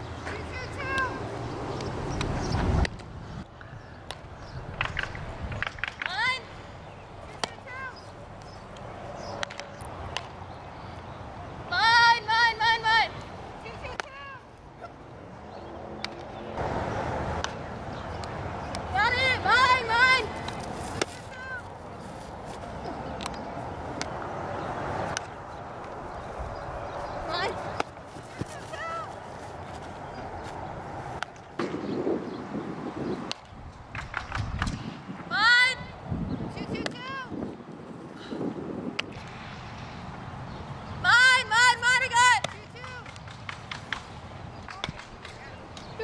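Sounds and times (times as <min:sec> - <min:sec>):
softball impact crack: 0:07.3 - 0:07.6, 0:24.0 - 0:24.3, 0:27.7 - 0:28.8.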